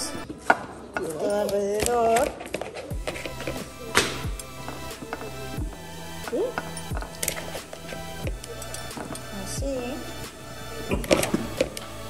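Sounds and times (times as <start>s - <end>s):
background music with beat: 0.0s - 0.9s, 2.5s - 12.0s.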